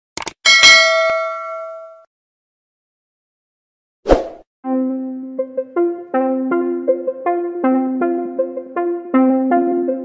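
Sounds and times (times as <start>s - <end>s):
notification bell ding: 0.5s - 2.0s.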